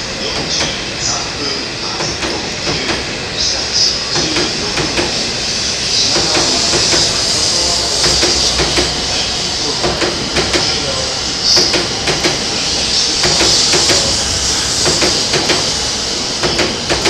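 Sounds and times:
train running past: 0:00.0 - 0:17.0
train wheels clicking: 0:00.0 - 0:17.0.

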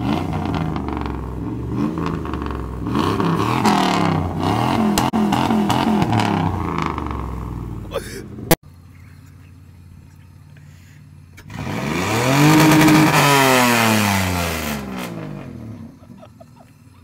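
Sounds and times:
truck engine idling and revving: 0:00.0 - 0:17.0.

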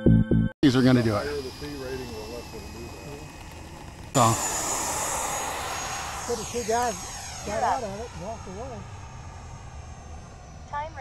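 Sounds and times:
faint high whine: 0:00.6 - 0:11.0.

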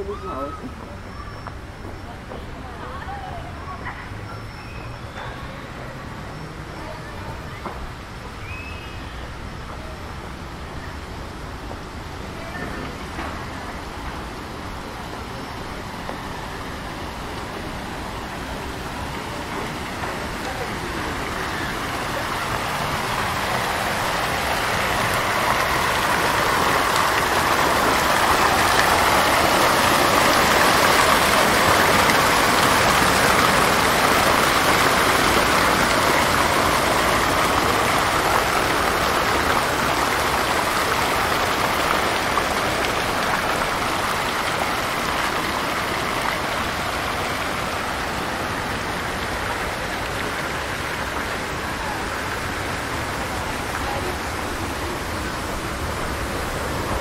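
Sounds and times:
fountain water splashing: 0:00.0 - 0:57.0.

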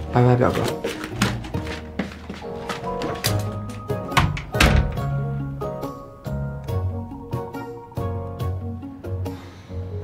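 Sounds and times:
background music: 0:00.0 - 0:10.0
wooden door shutting: 0:02.8 - 0:05.2.

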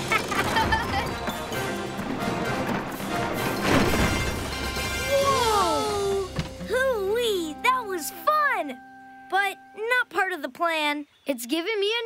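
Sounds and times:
cartoon music: 0:05.0 - 0:10.3.

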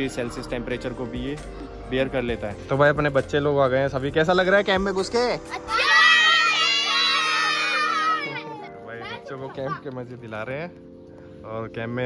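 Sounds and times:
children shouting and cheering: 0:05.5 - 0:09.9.

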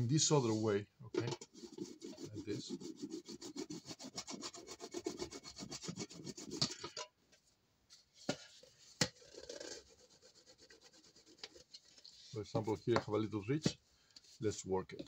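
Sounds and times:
block rubbing on thin metal: 0:01.2 - 0:06.8, 0:08.7 - 0:13.8.

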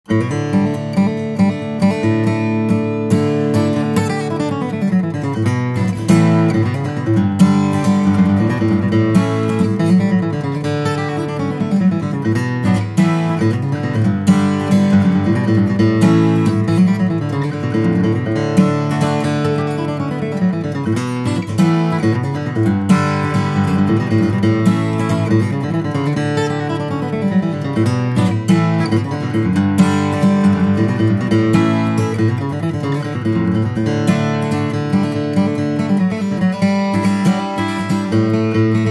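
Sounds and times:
acoustic guitar picked melody: 0:00.0 - 0:38.9.

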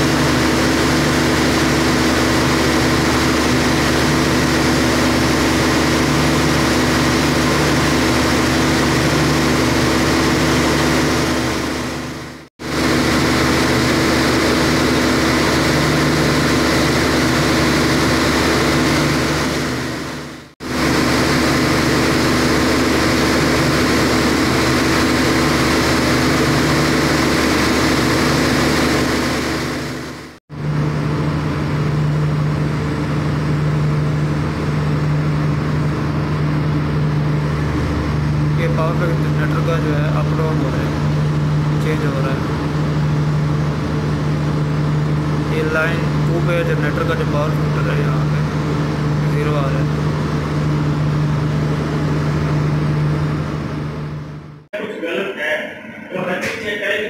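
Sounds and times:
diesel generator engine drone: 0:00.0 - 0:54.9.

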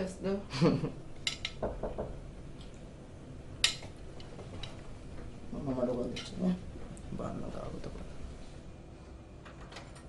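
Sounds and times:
dull knocks: 0:01.6 - 0:02.2.

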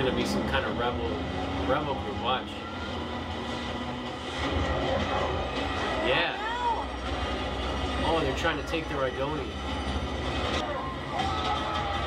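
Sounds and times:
heavy truck rumbling and rattling: 0:00.0 - 0:12.0.

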